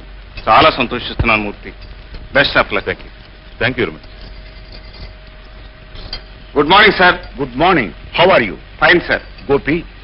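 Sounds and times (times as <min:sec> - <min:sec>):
faint constant hum: 0:00.0 - 0:10.0
steady hiss: 0:00.0 - 0:10.0.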